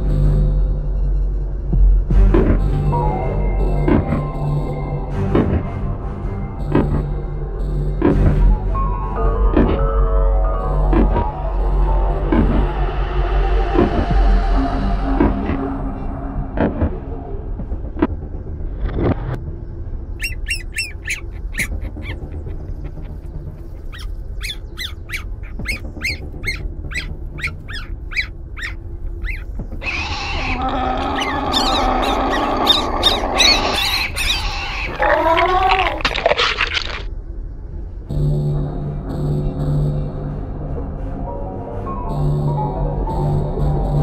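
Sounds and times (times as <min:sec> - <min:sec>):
low ambient drone: 0:00.0 - 0:44.0
high bird-like chirps: 0:20.2 - 0:30.5, 0:31.2 - 0:35.0.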